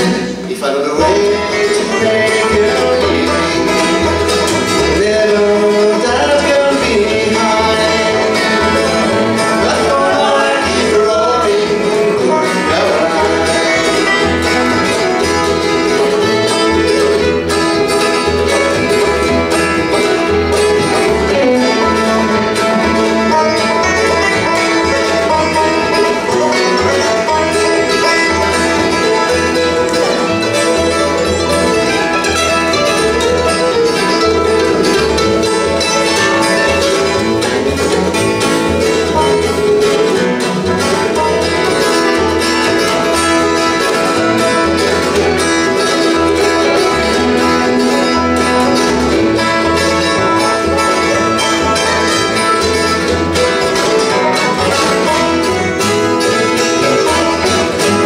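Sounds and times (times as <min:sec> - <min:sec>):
acoustic guitar: 0:00.0 - 0:58.0
banjo: 0:00.0 - 0:58.0
fiddle: 0:00.0 - 0:58.0
mandolin: 0:00.0 - 0:58.0
upright bass: 0:00.0 - 0:58.0.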